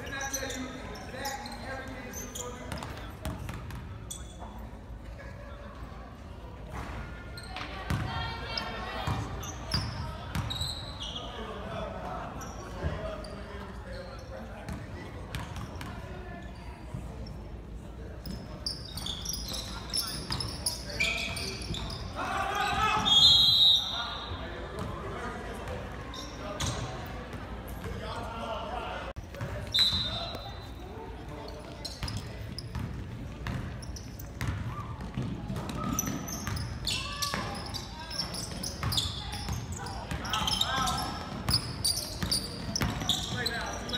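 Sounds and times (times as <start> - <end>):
voices and shouts echoing: 7.4 - 17.1, 19.0 - 32.8, 34.5 - 43.9.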